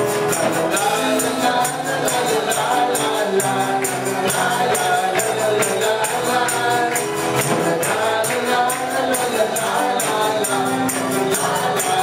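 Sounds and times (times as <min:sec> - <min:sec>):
congregation singing: 0:00.0 - 0:12.0
people clapping a beat: 0:00.0 - 0:12.0
worship band music: 0:00.0 - 0:12.0.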